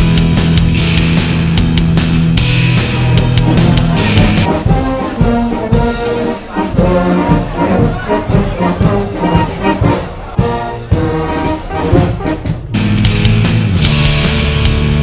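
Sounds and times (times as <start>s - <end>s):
brass band playing: 0.0s - 14.8s
loud rock music: 0.0s - 15.0s.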